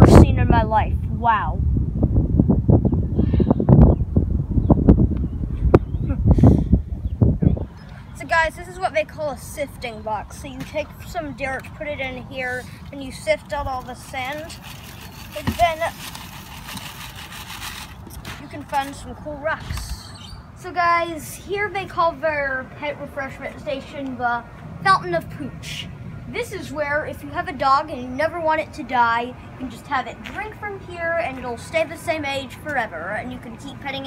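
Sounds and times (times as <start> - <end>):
wind buffeting microphone: 0.0 - 34.0
dirt and sand sifting through screen: 12.4 - 19.1.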